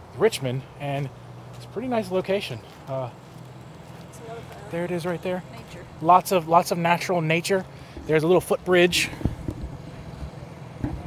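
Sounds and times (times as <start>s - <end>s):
low rumble: 8.0s - 11.0s
soft low thumps: 8.8s - 11.0s.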